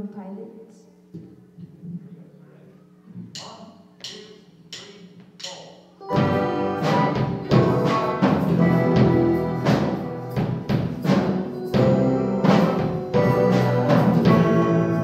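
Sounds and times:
drum kit: 0:03.4 - 0:15.0
bass guitar: 0:06.0 - 0:15.0.

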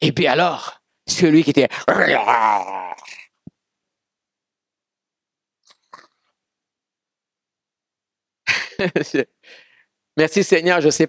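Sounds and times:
person making faint vocal sounds: 0:01.8 - 0:03.3.

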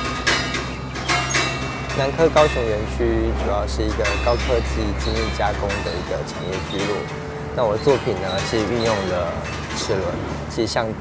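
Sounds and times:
bright metal chime notes: 0:00.3 - 0:10.1.

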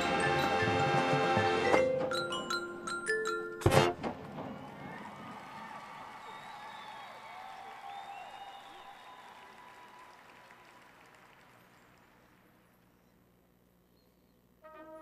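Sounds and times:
stadium crowd applauding and cheering: 0:03.9 - 0:12.8.

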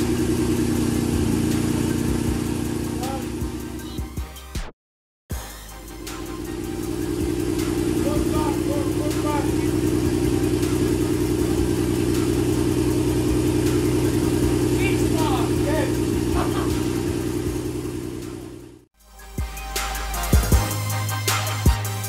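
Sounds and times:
car engine idling: 0:00.0 - 0:04.2, 0:05.3 - 0:18.9.

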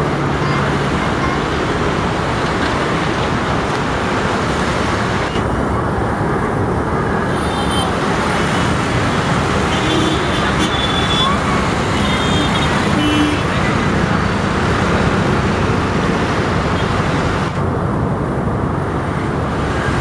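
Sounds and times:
traffic noise: 0:00.0 - 0:20.0.

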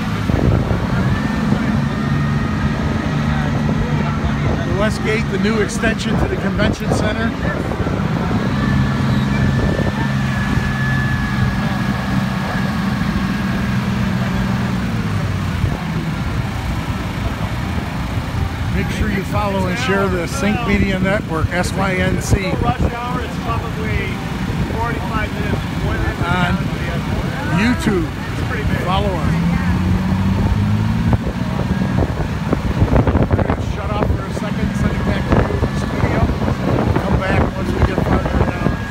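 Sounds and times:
wind noise: 0:00.0 - 0:13.3, 0:29.4 - 0:38.9
car engine drone: 0:00.0 - 0:38.9
road rumble: 0:00.0 - 0:38.9.

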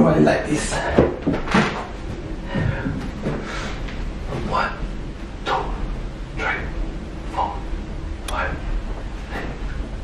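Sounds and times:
breathing: 0:02.4 - 0:04.0.

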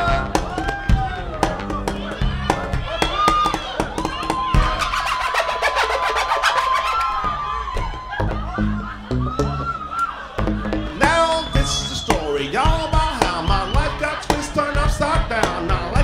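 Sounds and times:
bass thumps: 0:00.0 - 0:04.8, 0:07.3 - 0:16.0.

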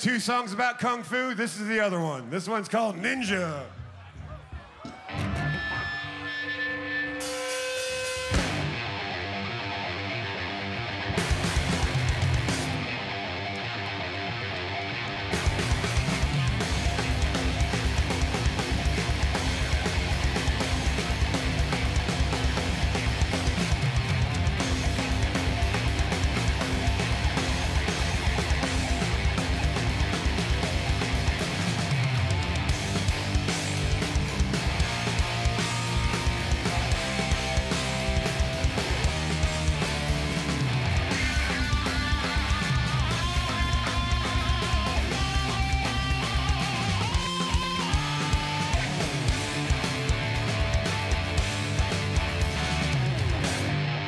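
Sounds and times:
distorted electric guitar: 0:05.0 - 0:54.0
drum kit: 0:07.2 - 0:09.2, 0:10.9 - 0:13.6, 0:15.2 - 0:54.0
electric bass: 0:08.3 - 0:54.0.

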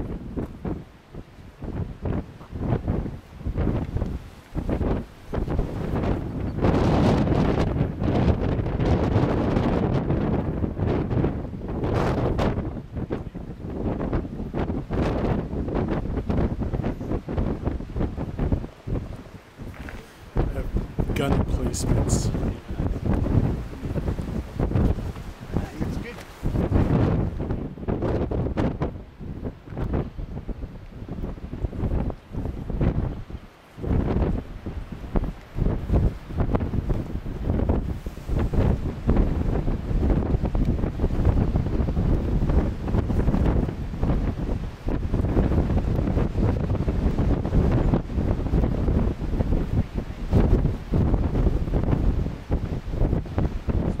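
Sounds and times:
strong wind buffeting microphone: 0:00.0 - 0:54.0.

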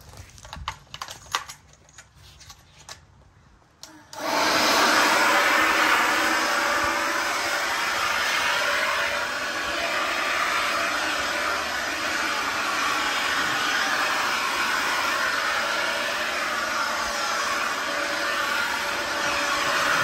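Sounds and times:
leaf blower running: 0:04.1 - 0:20.0.

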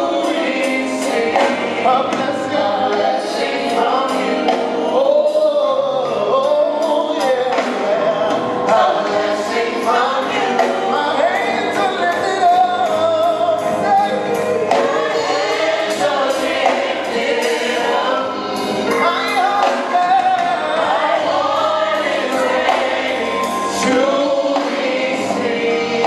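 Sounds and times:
choir singing: 0:00.0 - 0:26.0.

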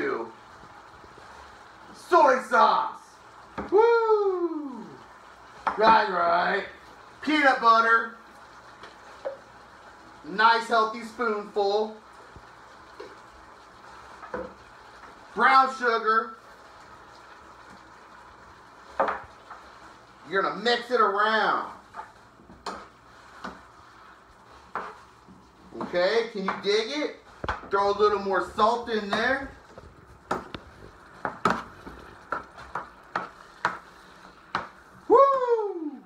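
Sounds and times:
beef sizzling in a skillet: 0:00.0 - 0:35.7.

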